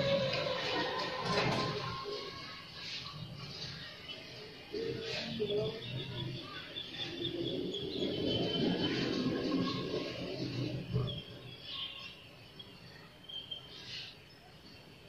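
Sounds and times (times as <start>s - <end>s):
city traffic rumble: 0.0s - 15.0s
small birds chirping: 2.2s - 15.0s.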